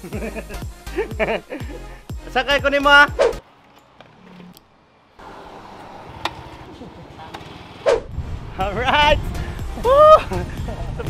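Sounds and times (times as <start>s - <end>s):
man laughing: 0.0s - 2.0s, 9.8s - 11.0s
street traffic rumble: 1.0s - 11.0s.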